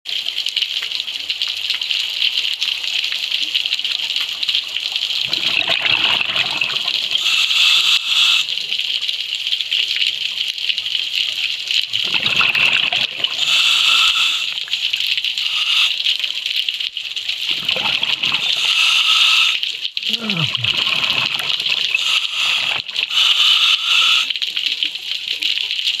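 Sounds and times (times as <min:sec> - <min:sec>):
exhaled bubbles underwater: 0:05.2 - 0:08.5, 0:11.9 - 0:14.6, 0:17.4 - 0:24.2
regulator inhalation hiss: 0:07.2 - 0:08.5, 0:13.4 - 0:14.6, 0:15.4 - 0:16.1, 0:18.4 - 0:20.4, 0:21.8 - 0:24.3
steady high hiss: 0:07.2 - 0:08.5, 0:21.9 - 0:24.3.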